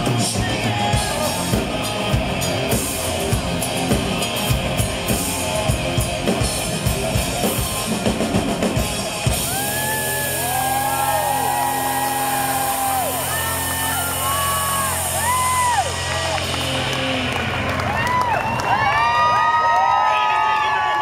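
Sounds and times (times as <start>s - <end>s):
crowd cheering and whooping: 0.0s - 1.8s, 9.2s - 21.0s
rock band closing chord: 0.0s - 18.5s.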